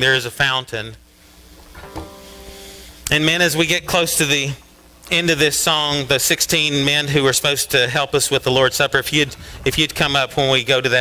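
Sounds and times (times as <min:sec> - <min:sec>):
guitar chords strummed: 0:01.7 - 0:02.9.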